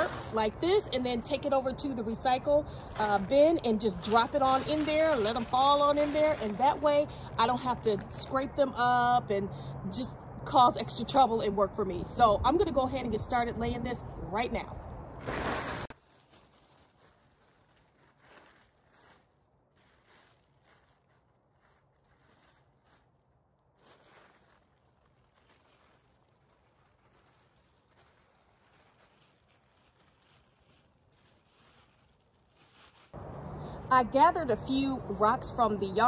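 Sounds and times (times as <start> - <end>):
plastic tarp rustling: 0.0 - 8.0, 15.2 - 33.4.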